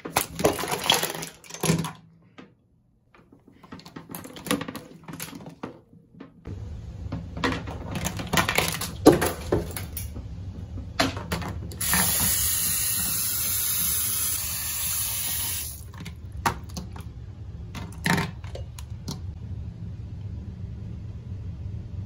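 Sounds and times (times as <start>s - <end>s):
objects clicking and knocking: 0.0s - 6.5s, 7.1s - 13.2s, 17.7s - 19.4s.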